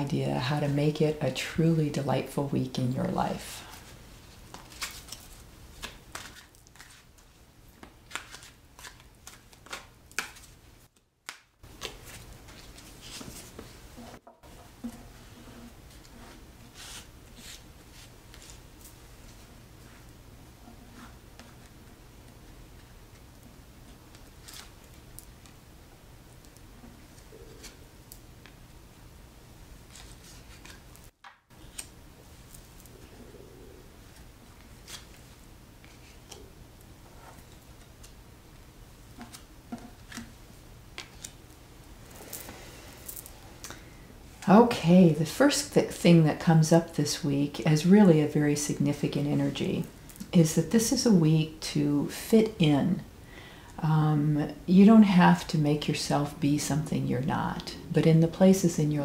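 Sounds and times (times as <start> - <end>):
low steady hum: 0.0 - 10.9, 11.6 - 59.0
cards being shuffled: 4.4 - 7.2, 7.8 - 10.5, 11.2 - 13.8, 16.7 - 18.6, 24.1 - 24.7, 29.9 - 32.0, 34.1 - 36.5.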